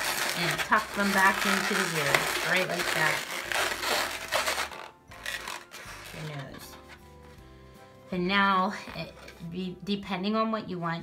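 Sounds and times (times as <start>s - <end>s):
balloon rubbing and squeaking: 0.0s - 7.5s.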